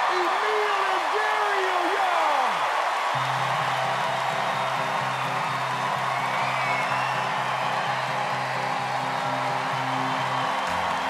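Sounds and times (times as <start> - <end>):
audience cheering and clapping: 0.0 - 11.0
whoops: 0.0 - 11.0.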